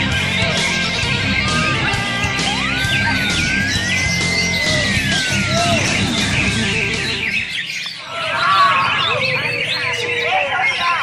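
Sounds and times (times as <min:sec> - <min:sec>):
music with low bass: 0:00.0 - 0:07.4
birds chirping and whistling: 0:00.0 - 0:11.0.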